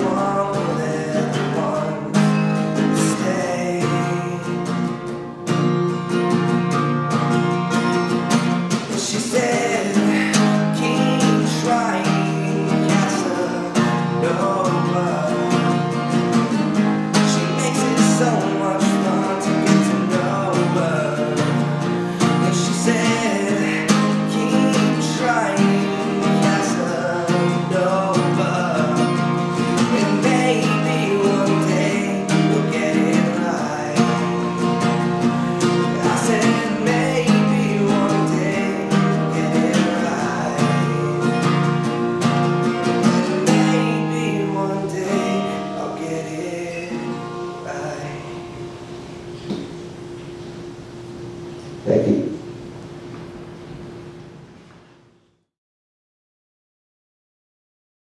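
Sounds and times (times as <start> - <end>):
acoustic guitar strumming: 0.0 - 55.1.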